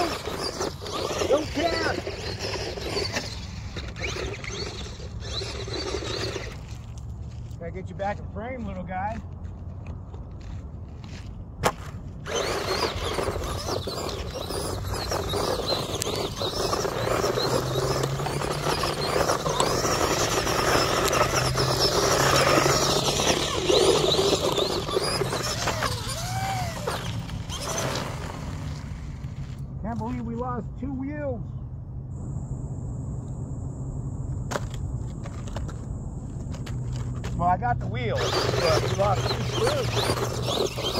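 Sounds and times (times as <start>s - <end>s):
crunch of dirt and gravel: 0.0s - 31.0s, 34.3s - 40.9s
electric motor whine: 12.2s - 29.6s, 38.1s - 40.9s.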